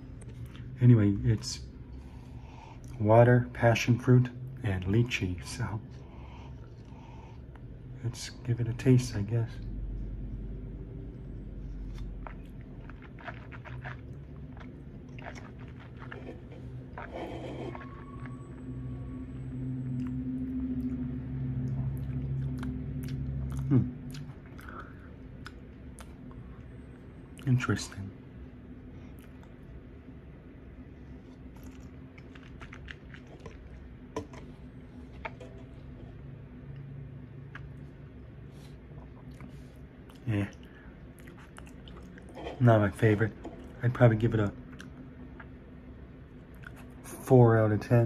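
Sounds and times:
person sipping and swallowing: 11.6 - 18.4.

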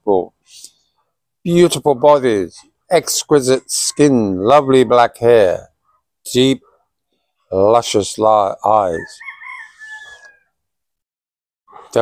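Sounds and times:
high-pitched animal call: 9.1 - 10.5.

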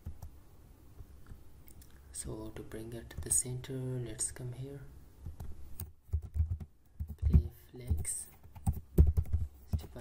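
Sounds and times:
keyboard typing: 0.0 - 0.3, 5.2 - 10.0.

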